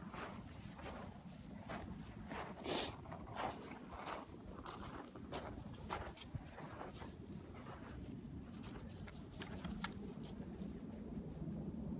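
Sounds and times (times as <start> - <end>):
footsteps on gravel: 0.0 - 9.7.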